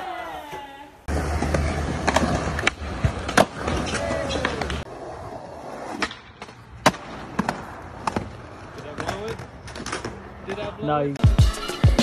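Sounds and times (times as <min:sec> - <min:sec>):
skateboard wheels rolling: 0:00.0 - 0:11.2
skateboard clacking on ground: 0:05.8 - 0:10.9.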